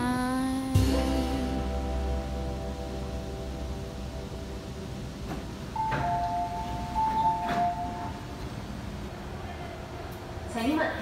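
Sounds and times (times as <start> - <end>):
background music: 0.0 - 8.7
door mechanism clacks: 5.3 - 8.6
two-note door chime: 5.8 - 8.5.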